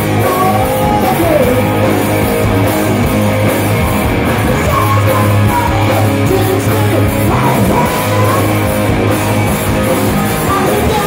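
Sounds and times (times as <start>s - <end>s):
metal band playing live: 0.0s - 11.0s
guitar line bending in pitch: 0.8s - 10.4s.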